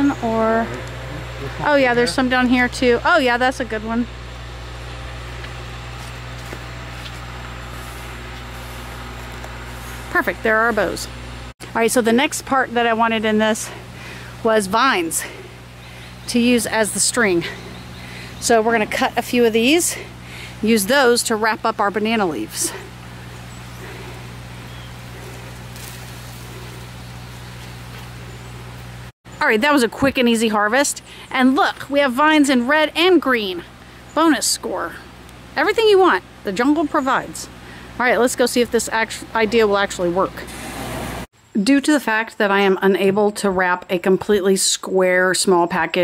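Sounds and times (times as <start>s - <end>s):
generator engine humming: 0.0s - 41.3s.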